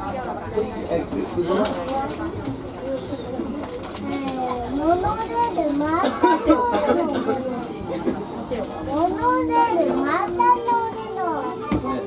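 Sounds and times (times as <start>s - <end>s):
passengers talking: 0.0s - 12.0s
child's high voice: 4.0s - 7.1s, 9.0s - 12.0s.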